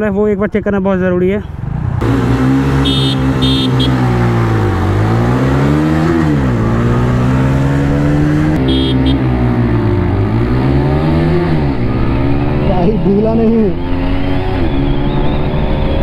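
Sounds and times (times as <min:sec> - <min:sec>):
motorcycle engine accelerating: 0:01.5 - 0:16.0.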